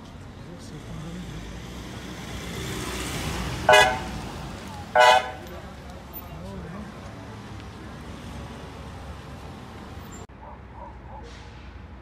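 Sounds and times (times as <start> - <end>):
ambulance engine and tyres: 0.0 - 12.0
ambulance horn blasts: 3.7 - 4.2, 4.9 - 5.4.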